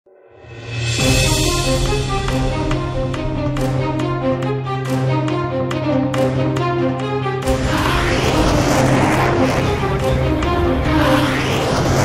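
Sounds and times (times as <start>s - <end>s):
loud rushing engine noise: 7.4s - 12.0s.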